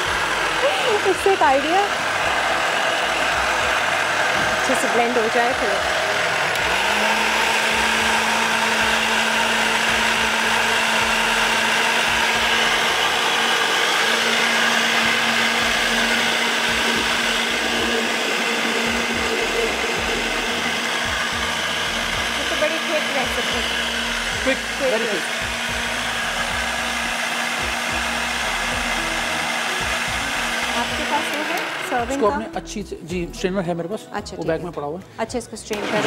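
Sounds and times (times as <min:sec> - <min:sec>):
blender running: 0:00.0 - 0:32.6, 0:35.7 - 0:36.0.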